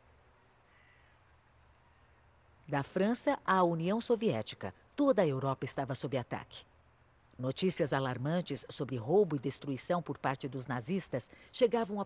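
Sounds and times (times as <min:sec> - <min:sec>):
faint bird call: 0:00.6 - 0:02.3.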